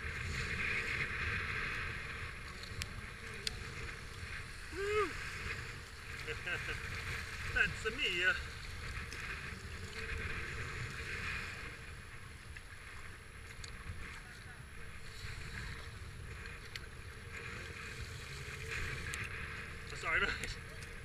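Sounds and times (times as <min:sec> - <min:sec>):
water splashing against kayak: 0:00.0 - 0:21.0
wind rumble on microphone: 0:00.0 - 0:21.0.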